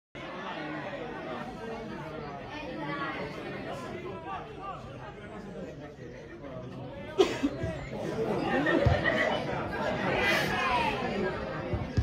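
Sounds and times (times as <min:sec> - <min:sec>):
overlapping chatter: 0:00.2 - 0:12.0.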